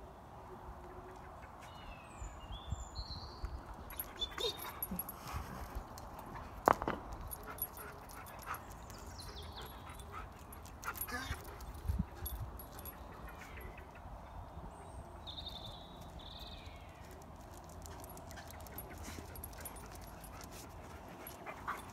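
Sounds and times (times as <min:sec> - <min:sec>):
dog yipping and whimpering: 0:03.9 - 0:05.0
birds chirping faintly: 0:07.3 - 0:17.4.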